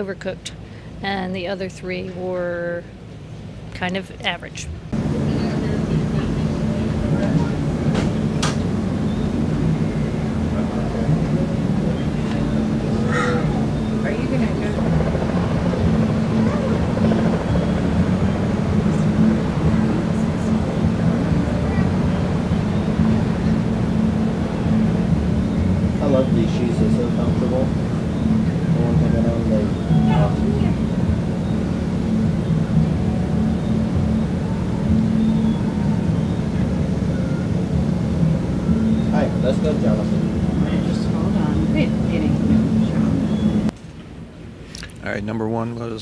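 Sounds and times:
indistinct voices: 3.8s - 32.4s, 38.5s - 43.7s
loud machine-like drone: 4.5s - 43.8s.

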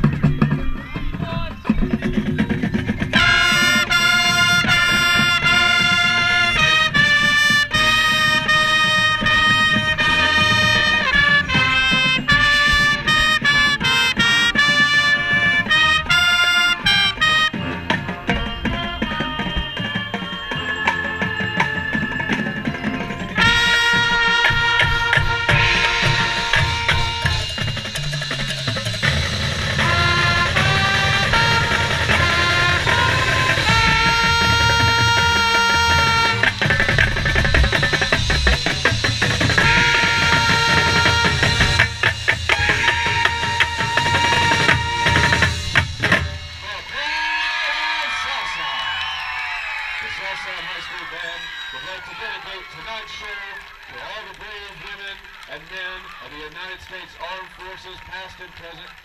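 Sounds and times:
marching band playing: 0.0s - 59.0s
trumpet: 3.1s - 59.0s
announcer over loudspeakers: 3.2s - 27.7s, 29.7s - 36.8s, 39.6s - 45.6s, 46.5s - 49.0s, 49.9s - 59.0s.

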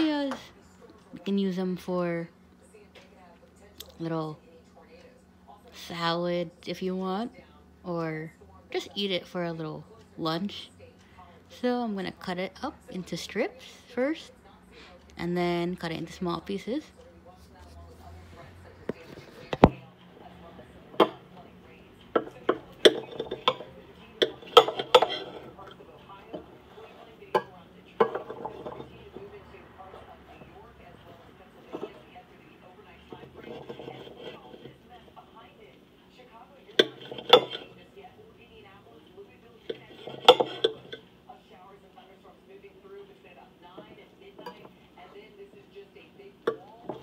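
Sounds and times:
faint low hum: 0.0s - 47.0s.

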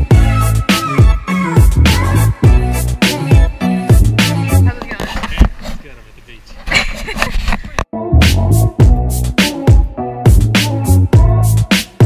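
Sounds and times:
music: 0.0s - 4.9s, 7.9s - 12.0s
person's voice: 4.3s - 6.5s.

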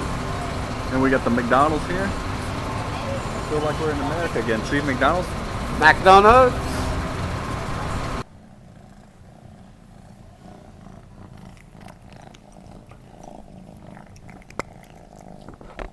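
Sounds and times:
city street traffic: 0.0s - 8.4s
cat purring: 0.0s - 15.9s.

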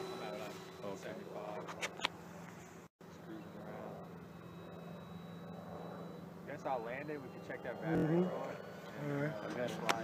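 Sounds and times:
distant model plane motor droning: 0.0s - 10.0s
thin high whine: 0.0s - 10.0s.

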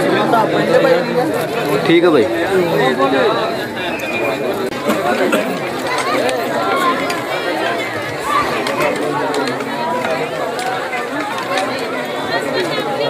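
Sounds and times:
overlapping chatter of people: 0.0s - 13.0s.

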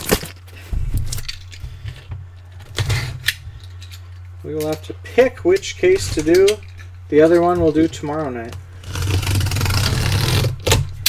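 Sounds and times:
packing tape torn from cardboard: 0.0s - 1.9s, 8.8s - 11.0s.

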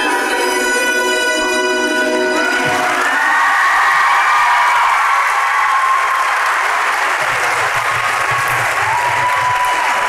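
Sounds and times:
audience applause and cheering: 1.9s - 10.0s.

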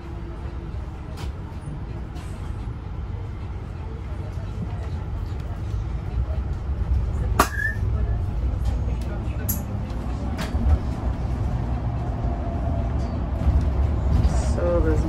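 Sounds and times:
bus rumbling on road: 0.0s - 15.0s
brief squeak: 7.5s - 7.8s.

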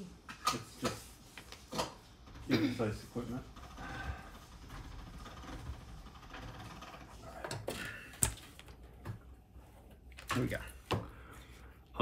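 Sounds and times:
clay sheets being handled: 0.4s - 2.2s.

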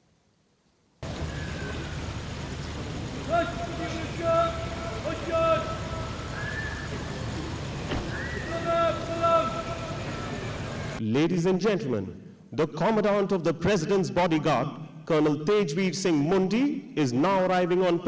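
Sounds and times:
noisy background: 1.0s - 18.0s
person shouting parade commands: 3.2s - 6.3s, 8.3s - 11.0s.

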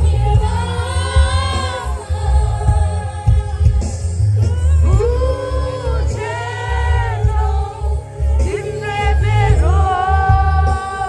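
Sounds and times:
heavy pulsing bass beat: 0.0s - 11.0s.

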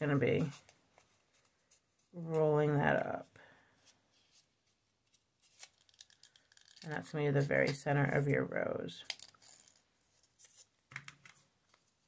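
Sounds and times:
paper rustling with soft ticks: 3.9s - 7.8s.

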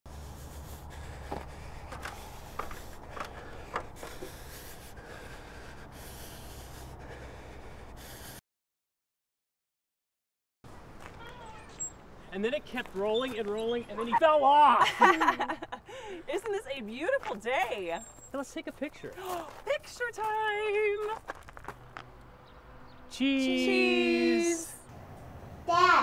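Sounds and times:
short high squeaks: 11.2s - 12.0s, 18.0s - 18.4s.

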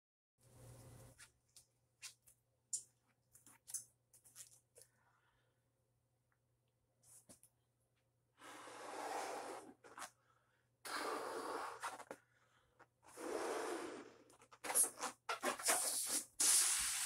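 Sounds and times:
breaths blowing up balloon: 10.8s - 12.2s, 13.1s - 17.0s.

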